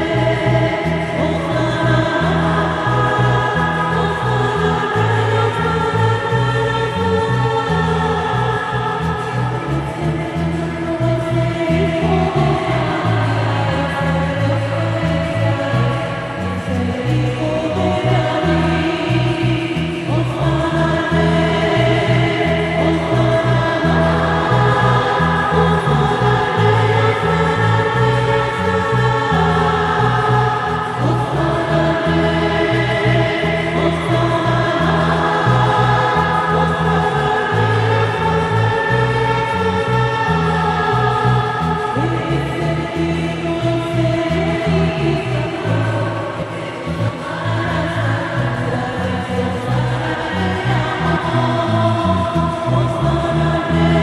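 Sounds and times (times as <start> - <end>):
church choir singing a hymn: 0.0 - 54.0
low bass accompaniment: 0.0 - 54.0.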